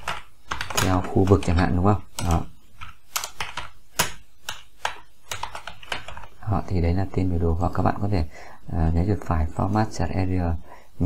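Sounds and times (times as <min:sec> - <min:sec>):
typing on computer keyboard: 0:00.0 - 0:06.2.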